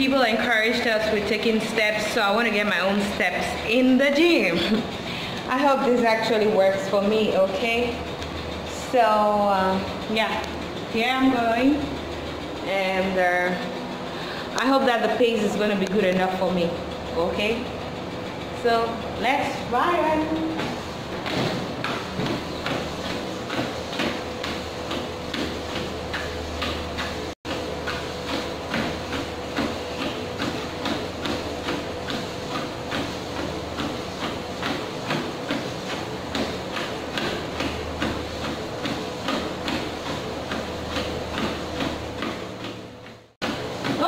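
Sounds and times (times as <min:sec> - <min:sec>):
treadmill motor whine: 0:00.0 - 0:44.0
footfalls on treadmill belt: 0:20.2 - 0:44.0.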